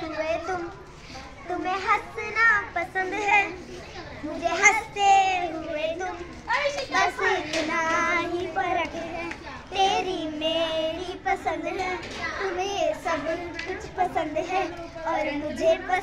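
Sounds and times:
girls singing together: 1.5 - 16.0.

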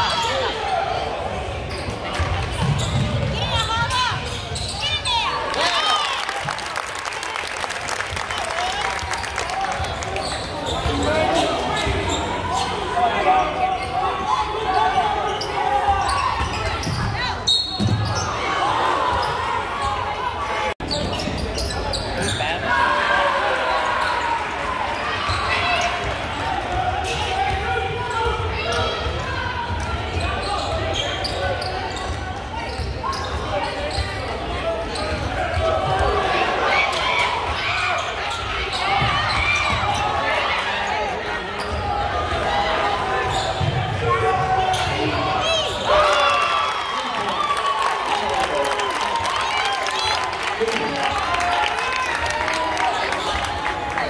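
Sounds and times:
spectators chattering and shouting: 0.0 - 54.0.

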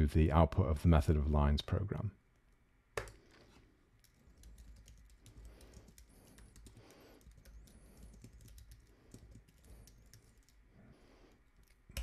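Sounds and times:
typing on computer keyboard: 4.0 - 10.6.

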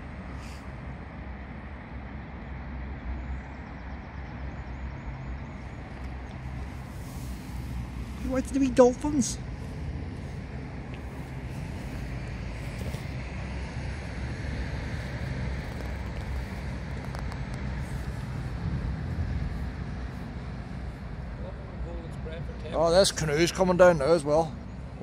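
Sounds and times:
low engine drone: 0.0 - 25.0
outdoor rumble: 0.0 - 25.0.

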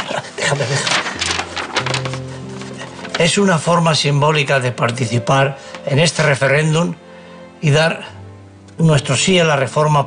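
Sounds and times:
paper rustling: 0.0 - 4.0
soft sustained background music: 0.0 - 10.0.

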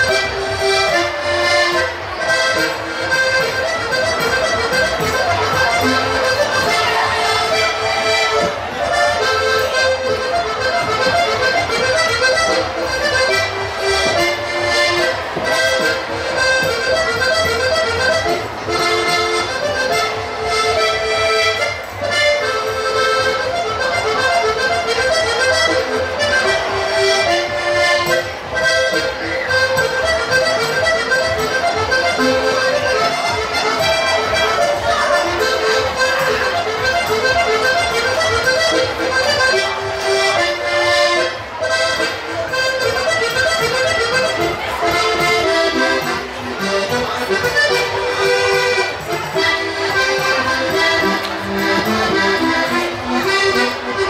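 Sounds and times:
button accordion folk tune: 0.0 - 54.0.

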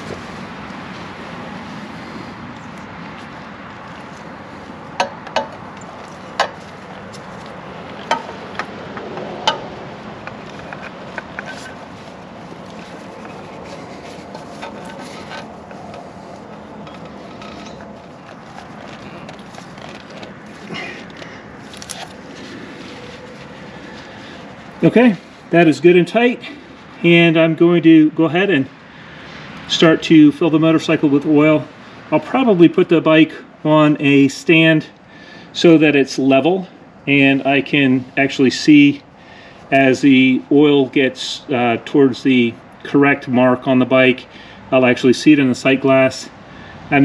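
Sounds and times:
steady background noise: 0.0 - 47.0
oil filter clicks and scrapes: 2.6 - 24.8.

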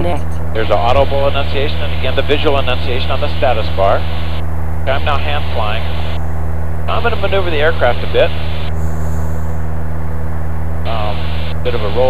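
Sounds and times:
light aircraft engine drone: 0.0 - 12.0.

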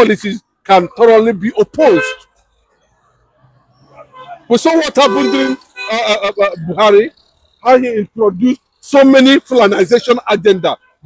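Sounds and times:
man speaking: 0.0 - 2.2, 4.1 - 10.8
faint street traffic: 0.0 - 11.0.

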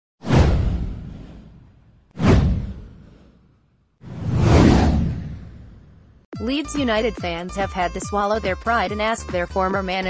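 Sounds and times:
whoosh: 0.2 - 6.2.

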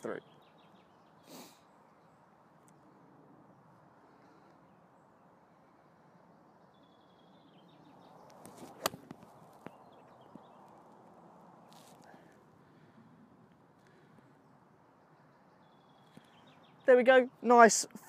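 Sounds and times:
golf club striking ball: 8.5 - 9.2.

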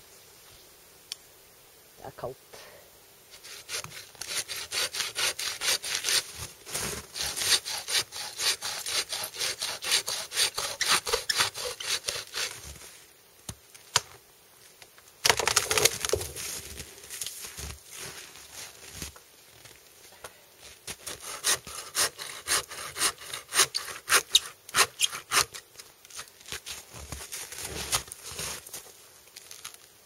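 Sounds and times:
bow saw cutting wood: 3.3 - 12.8, 21.0 - 25.7.

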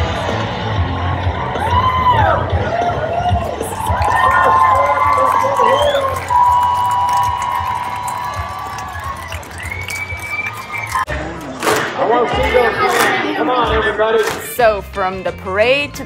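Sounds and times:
rodeo crowd cheering and whooping: 0.0 - 11.2
music: 0.0 - 16.0
sharp crack: 11.6 - 12.0, 14.2 - 14.5.

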